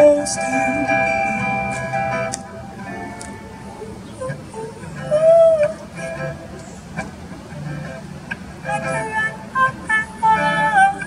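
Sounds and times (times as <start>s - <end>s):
woman singing: 0.0s - 1.8s, 3.7s - 5.8s, 8.7s - 11.0s
faint musical accompaniment: 0.0s - 11.0s.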